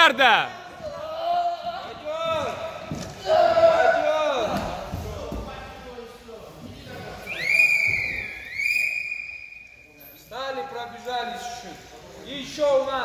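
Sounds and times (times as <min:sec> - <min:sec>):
long rising whistle: 0:07.3 - 0:09.8.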